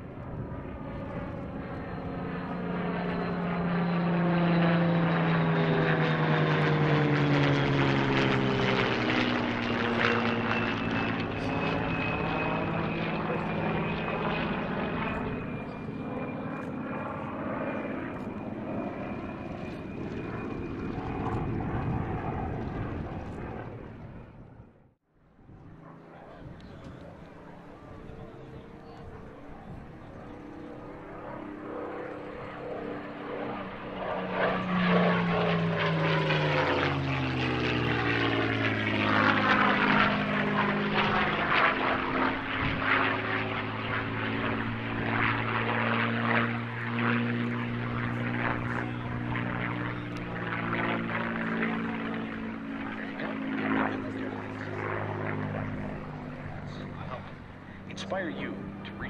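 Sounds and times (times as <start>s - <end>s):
propeller plane engine passing: 0.0s - 59.0s.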